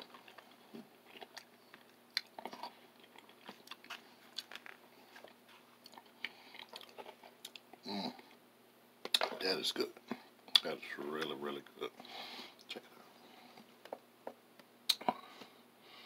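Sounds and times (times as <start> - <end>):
person chewing: 0.0 - 8.4, 14.9 - 15.5.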